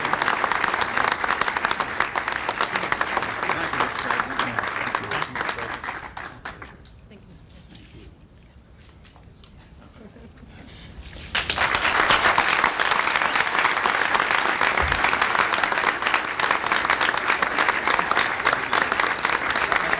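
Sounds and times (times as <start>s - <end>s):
audience applause: 0.0s - 6.8s, 11.3s - 19.9s.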